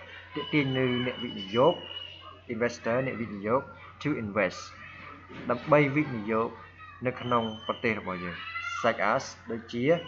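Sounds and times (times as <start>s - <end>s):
man speaking: 0.0s - 1.9s, 2.5s - 4.8s, 5.4s - 10.0s.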